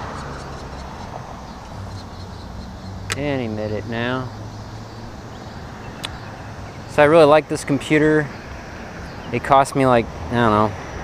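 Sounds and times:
distant road traffic hum: 0.0s - 11.0s.

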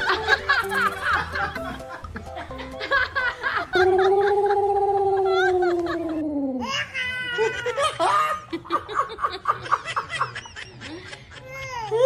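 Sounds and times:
man laughing: 0.1s - 6.2s
baby laughing: 0.2s - 1.8s
high held ooo voice: 3.7s - 6.7s.

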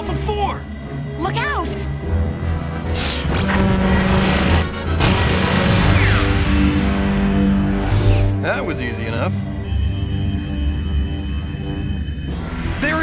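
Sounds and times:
action background music: 0.0s - 13.0s.

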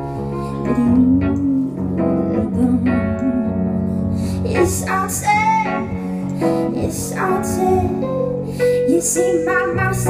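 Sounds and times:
keyboard sustained chords: 0.0s - 10.0s.

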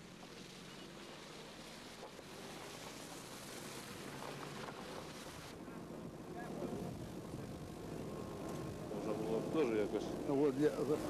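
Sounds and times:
car rolling through mud and water: 0.0s - 11.0s
people talking: 8.9s - 11.0s.

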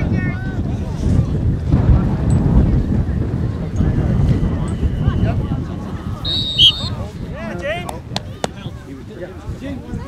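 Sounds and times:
wind buffeting microphone: 0.0s - 10.0s
people shouting: 6.3s - 6.9s.

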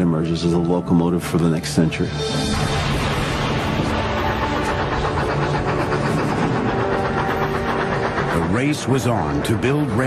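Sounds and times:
background music: 0.0s - 10.0s
steam locomotive running: 1.2s - 10.0s.

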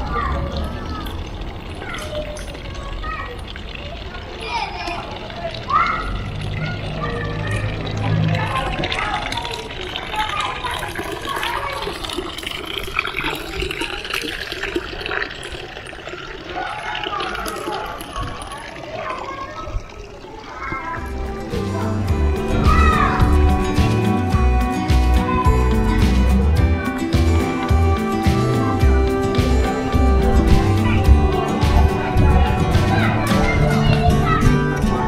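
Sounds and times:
people's voices: 0.0s - 35.0s
water stream running into basin: 0.0s - 35.0s
music: 20.9s - 35.0s.

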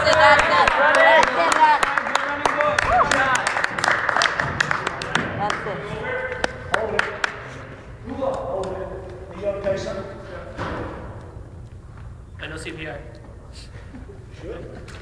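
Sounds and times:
voices echoing in a gymnasium: 0.0s - 15.0s.

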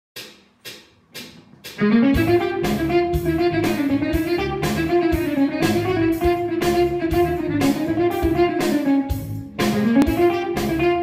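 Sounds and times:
band with electric guitar: 1.8s - 11.0s.

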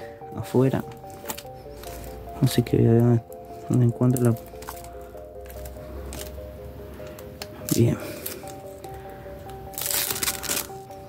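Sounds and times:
quiet background music: 0.0s - 11.0s
plastic film peeling crackle: 0.7s - 11.0s.

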